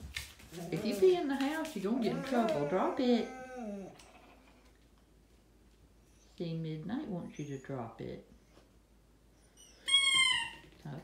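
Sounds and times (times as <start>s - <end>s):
dog whining: 0.5s - 4.8s, 9.3s - 10.7s.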